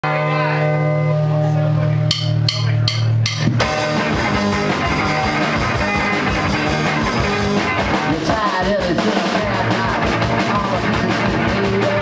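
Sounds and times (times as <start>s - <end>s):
live rock band: 0.1s - 12.0s.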